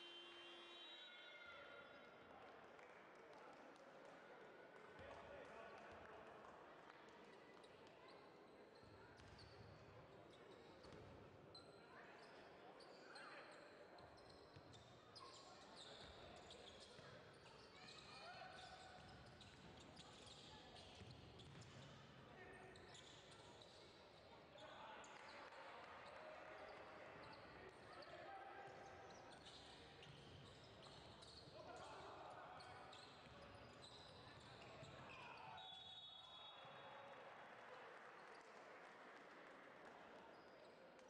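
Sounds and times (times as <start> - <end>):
voices of players and spectators: 0.0 - 41.0
sneakers squeaking: 18.6 - 21.9, 29.1 - 31.5, 32.6 - 35.8.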